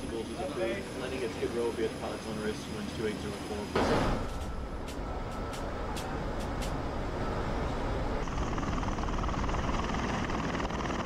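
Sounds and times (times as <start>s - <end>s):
rotors and turbine engines rushing: 0.0s - 11.0s.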